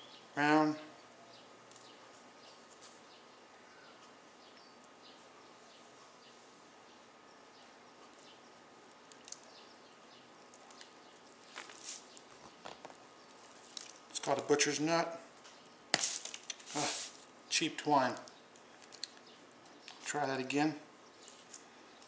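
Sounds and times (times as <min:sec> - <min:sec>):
twine and paper rustling: 0:10.5 - 0:14.7, 0:15.4 - 0:17.3.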